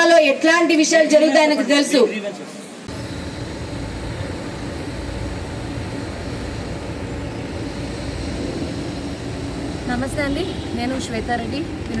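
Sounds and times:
low rumbling outdoor noise: 2.6s - 12.0s.

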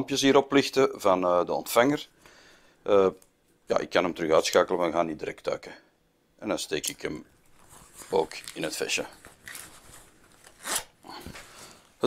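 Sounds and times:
fabric rustling: 7.4s - 11.9s.

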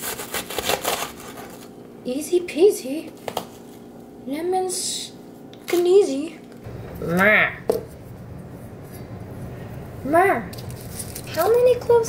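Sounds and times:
steady low hum: 1.4s - 12.0s.

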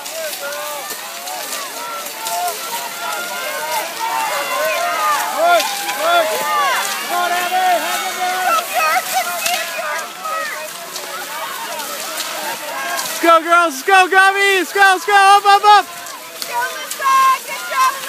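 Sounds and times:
skis and poles scraping on snow: 0.0s - 18.0s
spectators shouting and cheering: 0.0s - 18.0s.

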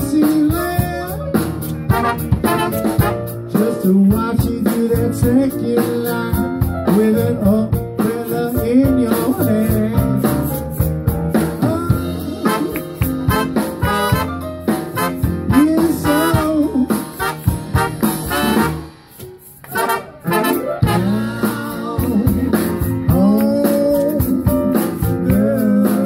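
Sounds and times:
live blues band playing: 0.0s - 26.0s.

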